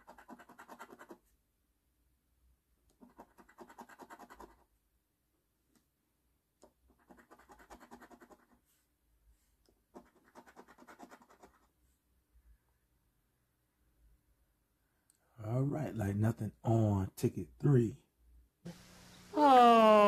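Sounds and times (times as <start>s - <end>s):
coin scratching lottery ticket: 0.0s - 1.2s, 3.0s - 4.6s, 7.0s - 8.6s, 9.9s - 11.7s.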